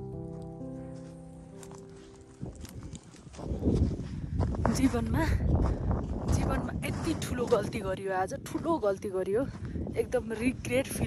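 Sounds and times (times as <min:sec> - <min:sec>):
background music: 0:00.0 - 0:03.4
footsteps crunching in snow: 0:00.1 - 0:10.8.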